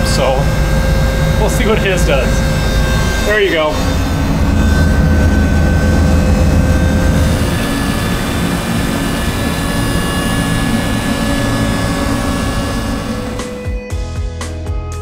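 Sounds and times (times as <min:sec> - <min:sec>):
mechanical drone with whining tones: 0:00.0 - 0:14.2.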